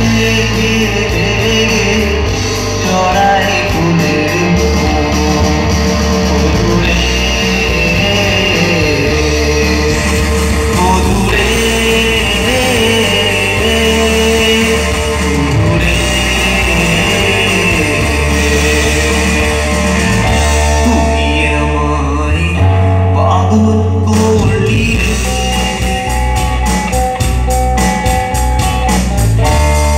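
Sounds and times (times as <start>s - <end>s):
male singer: 0.0s - 27.3s
live amplified band music: 0.0s - 29.9s.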